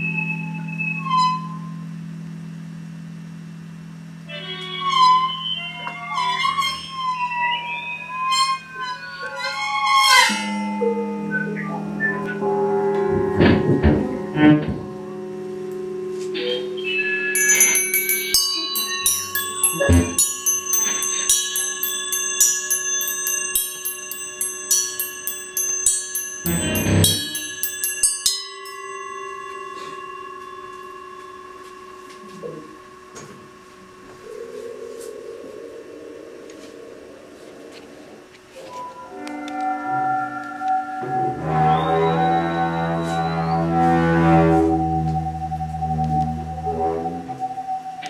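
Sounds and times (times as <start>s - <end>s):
gongs and cymbals ringing: 10.2s - 13.0s, 16.8s - 34.8s
steady bell-like tones: 10.3s - 13.0s, 16.7s - 37.3s
metal percussion strokes: 17.4s - 34.9s
low drone: 17.4s - 37.7s.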